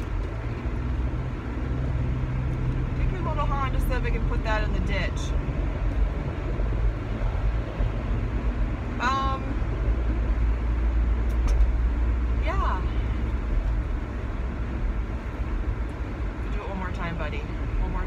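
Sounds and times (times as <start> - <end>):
road and engine rumble: 0.0 - 18.0.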